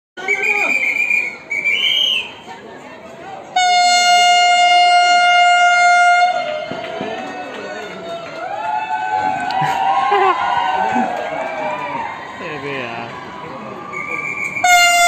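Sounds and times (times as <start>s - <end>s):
people shouting or whistling: 0.2s - 2.4s, 13.8s - 15.0s
crowd voices: 0.2s - 15.0s
train horn blast: 3.5s - 6.8s, 14.6s - 15.0s.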